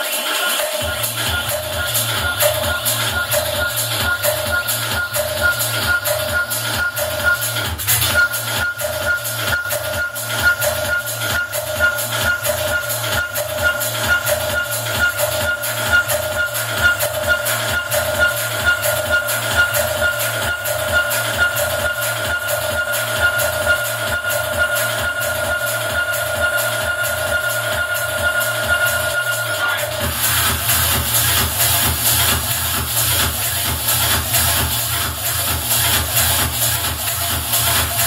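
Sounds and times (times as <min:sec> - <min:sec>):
thumping dance beat: 0:00.0 - 0:38.0
sustained synth tone: 0:00.8 - 0:38.0.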